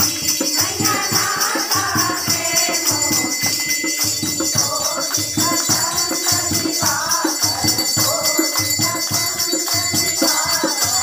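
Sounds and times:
fast percussion beat: 0.0 - 11.0
women singing together: 0.0 - 11.0.

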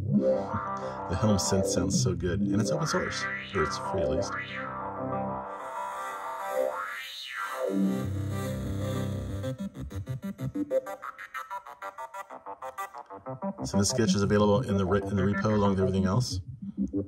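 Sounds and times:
synthesizer sustained note with filter sweep: 0.0 - 11.2
short repeated synthesizer notes: 12.4 - 17.0.

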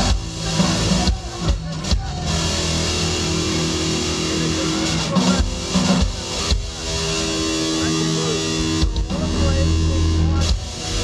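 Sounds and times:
drum hits: 0.0 - 11.0
rock band playing: 0.0 - 11.0.

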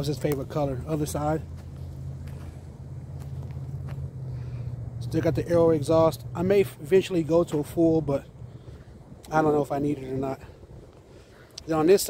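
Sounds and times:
footsteps on dry dirt: 0.0 - 8.0.

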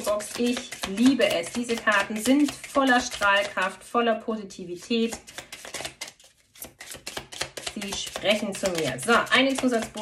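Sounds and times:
cards being shuffled by hand: 0.0 - 3.7, 5.0 - 10.0.

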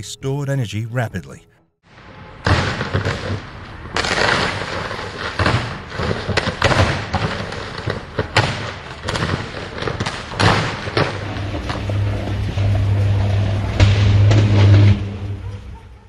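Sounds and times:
sharp electrical bangs: 2.4 - 15.5
electrical arcing crackle and buzz: 2.4 - 15.7.

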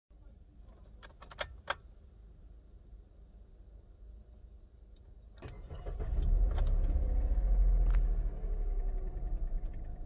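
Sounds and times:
car keys jangling in ignition: 0.7 - 1.8.

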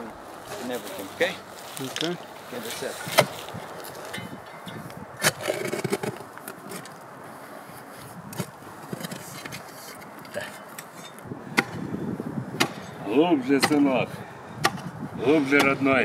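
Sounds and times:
digging tool scraping dirt: 2.7 - 7.0, 8.4 - 11.8.

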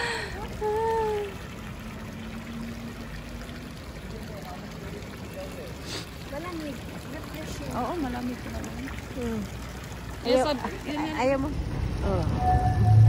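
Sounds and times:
fountain water pouring into basin: 0.0 - 13.0.

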